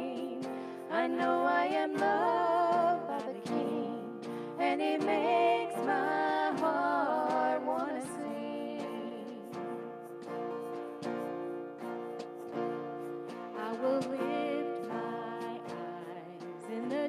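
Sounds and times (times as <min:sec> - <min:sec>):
woman singing lead vocal: 0:00.0 - 0:09.6, 0:13.6 - 0:17.0
acoustic guitars strumming: 0:00.0 - 0:17.0.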